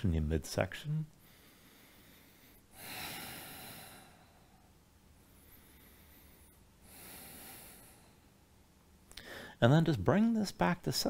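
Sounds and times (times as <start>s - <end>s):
man breathing out: 1.2s - 8.2s, 9.1s - 9.6s.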